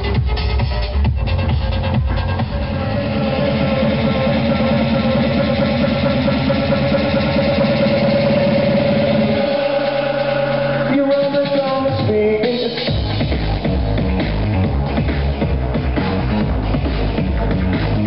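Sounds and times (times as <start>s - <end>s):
rapid pulsing bass: 0.0s - 18.0s.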